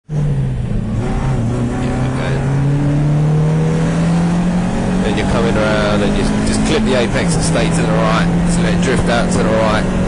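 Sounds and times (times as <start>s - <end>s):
car engine accelerating: 0.1s - 10.0s.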